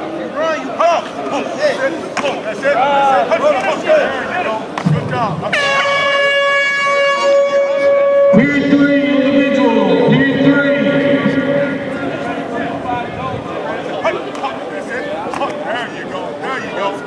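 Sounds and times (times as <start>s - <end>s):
air horn steady tone: 5.4s - 13.0s
lower horn tone: 5.4s - 13.4s.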